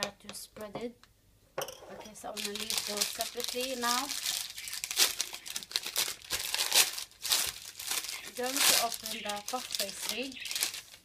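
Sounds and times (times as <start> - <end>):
wrapper rustling and crinkling: 2.2 - 11.0.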